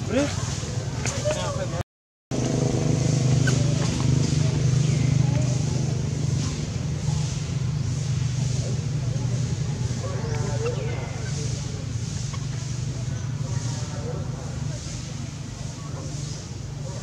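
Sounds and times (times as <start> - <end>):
low engine hum: 0.0 - 17.0
faint voices: 3.2 - 17.0.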